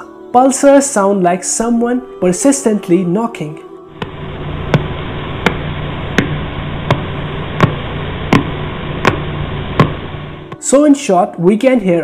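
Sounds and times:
static hiss: 3.9 - 10.9
sharp repeating clicks: 4.0 - 10.2.

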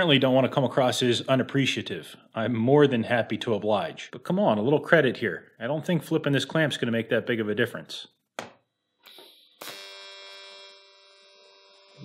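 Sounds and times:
welding arc buzzing: 9.0 - 12.0.

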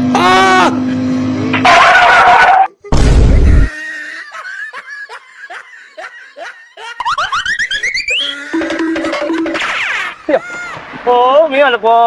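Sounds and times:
person laughing: 2.8 - 10.8.

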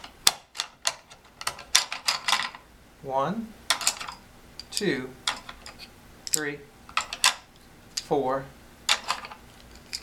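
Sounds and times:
wooden spindles clicking: 0.0 - 2.6, 8.9 - 10.0.

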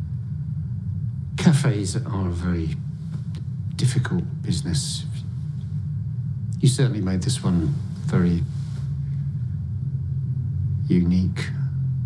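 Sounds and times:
held low hum: 0.0 - 12.0
steady low rumble: 0.0 - 12.0.

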